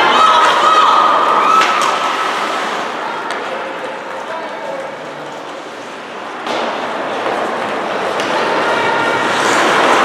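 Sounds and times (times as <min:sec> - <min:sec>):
crowd noise: 0:00.0 - 0:10.0
skating: 0:00.0 - 0:10.0.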